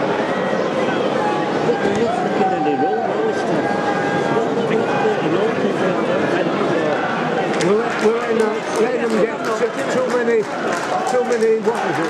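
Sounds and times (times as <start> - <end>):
many voices talking and calling: 0.0 - 12.0.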